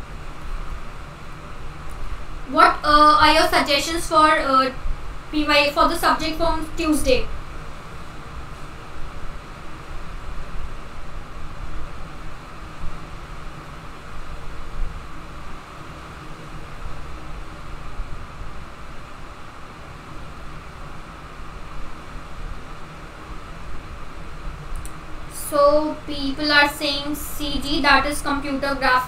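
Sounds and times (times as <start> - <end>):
low rumble and hiss: 0.0 - 29.0.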